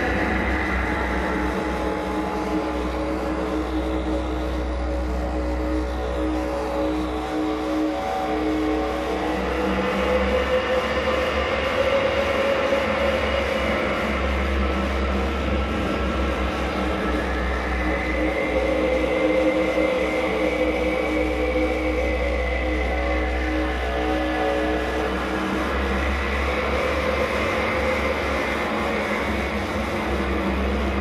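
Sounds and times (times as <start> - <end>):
dense distorted noise: 0.0 - 31.0
wavering droning tones: 0.0 - 31.0.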